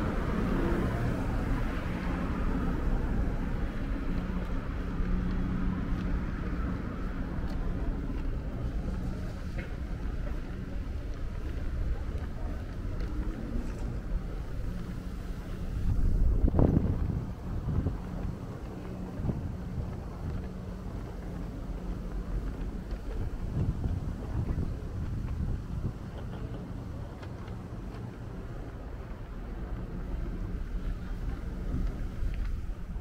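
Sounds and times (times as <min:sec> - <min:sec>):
traffic rumble: 0:00.0 - 0:33.0
wind buffeting microphone: 0:00.0 - 0:33.0.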